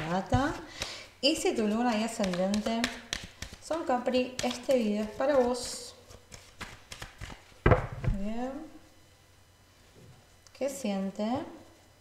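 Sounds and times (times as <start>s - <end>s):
thump on table: 7.6s - 8.2s.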